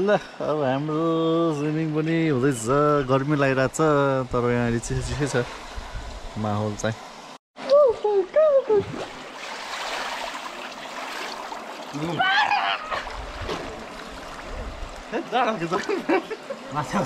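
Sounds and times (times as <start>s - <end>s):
pool water splashing: 8.5s - 17.0s.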